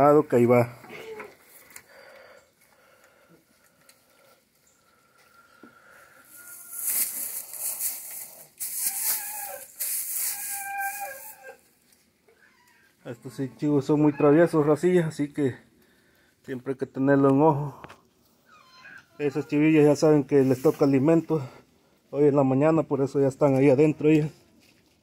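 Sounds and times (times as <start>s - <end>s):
farm animals calling: 4.2s - 7.0s, 8.8s - 11.7s, 12.3s - 15.5s, 18.4s - 21.5s
dry hay rustling and crackling: 6.1s - 12.1s.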